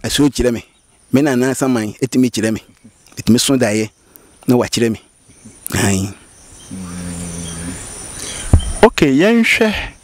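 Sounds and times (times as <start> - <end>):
high-pitched insect drone: 5.3 - 8.8
man humming low: 6.7 - 7.9.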